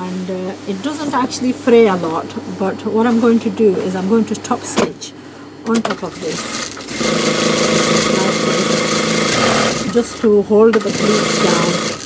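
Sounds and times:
sewing machine running: 5.7s - 12.0s.

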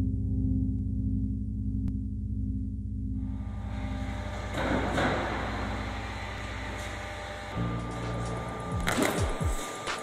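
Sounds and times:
steady low drone: 0.0s - 10.0s.

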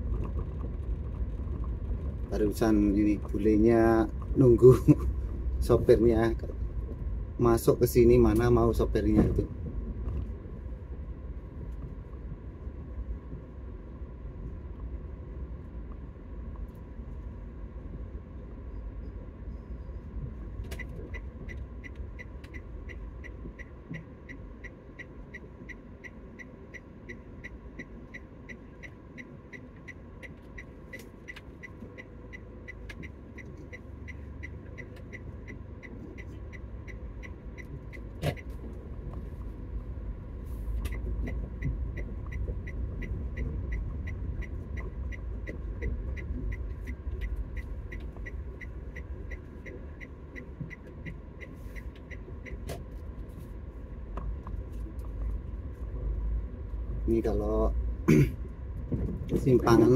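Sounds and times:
car engine rumble: 0.0s - 59.9s
turn signal ticking: 0.0s - 59.9s.

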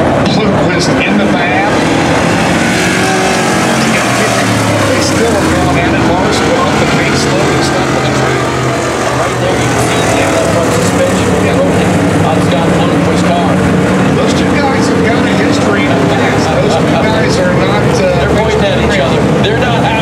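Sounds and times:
indistinct voices: 0.0s - 20.0s
race car engines on dirt track: 0.0s - 20.0s.

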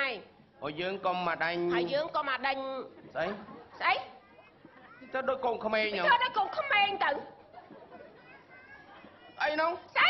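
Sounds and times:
man speaking: 9.4s - 9.9s.

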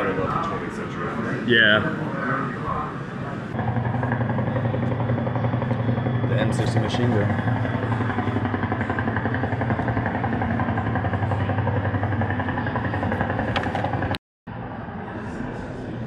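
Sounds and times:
helicopter rotor pulsing rumble: 0.0s - 14.2s
room hum: 0.0s - 16.0s.

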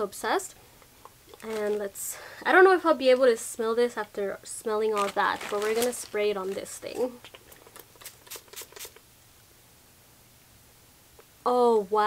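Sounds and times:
spray bottle spritzes: 7.9s - 9.0s.

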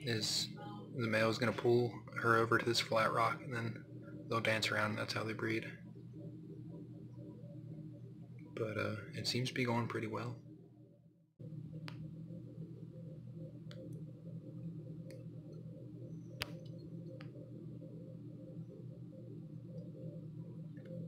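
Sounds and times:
low appliance hum: 0.0s - 21.0s.

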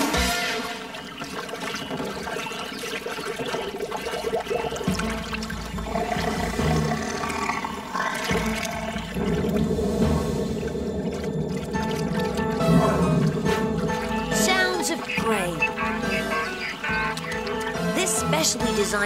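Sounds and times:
cartoon water swirling and bubbling: 0.0s - 19.0s.

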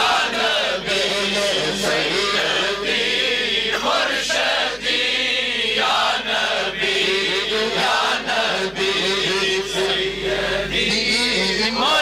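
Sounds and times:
crowd chanting along: 0.0s - 10.9s
men chanting: 0.0s - 12.0s.

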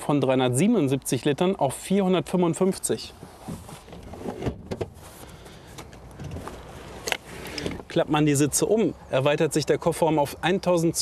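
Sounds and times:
faint rustling: 3.0s - 8.0s.

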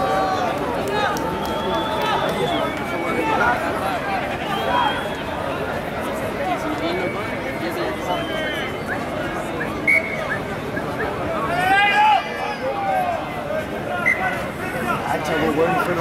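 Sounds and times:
overlapping voices chattering: 0.0s - 16.0s
referee's whistle blast: 9.7s - 10.4s.

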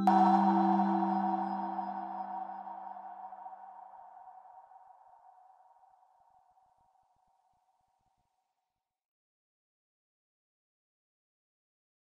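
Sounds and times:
bell-like chime ringing: 0.0s - 3.9s.

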